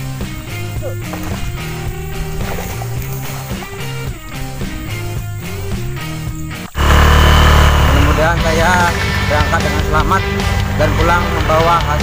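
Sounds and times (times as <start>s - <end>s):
background music: 0.0s - 12.0s
vehicle rumble: 0.0s - 12.0s
man talking: 7.8s - 12.0s.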